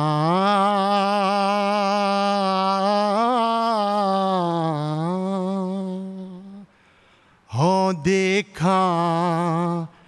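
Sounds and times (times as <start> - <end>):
man singing a hymn: 0.0 - 6.7, 7.5 - 10.0.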